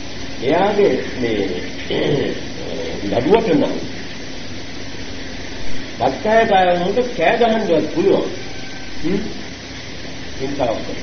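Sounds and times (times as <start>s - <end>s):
low hum: 0.0s - 11.0s
steady hiss: 0.0s - 11.0s.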